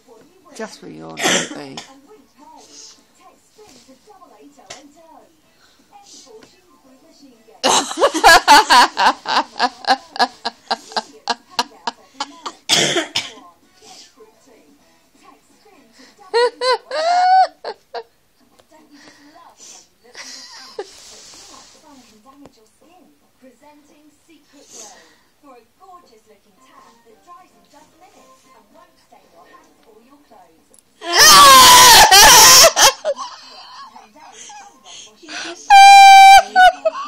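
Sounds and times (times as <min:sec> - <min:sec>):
person coughing: 0:01.2 - 0:01.9, 0:12.7 - 0:13.4
loud wailing cry: 0:31.0 - 0:33.1, 0:35.6 - 0:37.0
person laughing: 0:35.7 - 0:37.0.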